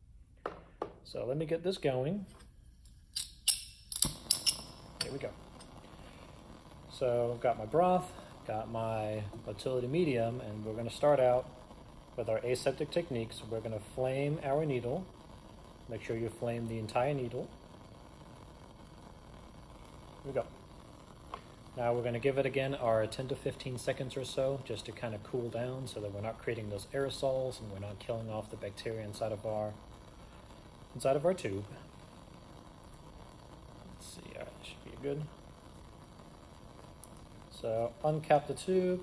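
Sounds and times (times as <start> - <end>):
gas flame hissing: 0.2 - 39.0.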